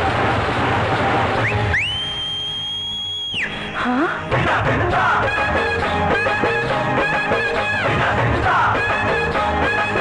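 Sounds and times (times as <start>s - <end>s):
street band drums: 0.0s - 2.0s
shrill finger whistle: 1.4s - 3.6s.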